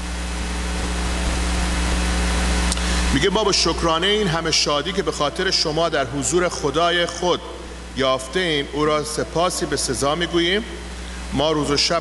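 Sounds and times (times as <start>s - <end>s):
steady low hum: 0.0s - 12.0s
constant hiss: 0.2s - 12.0s.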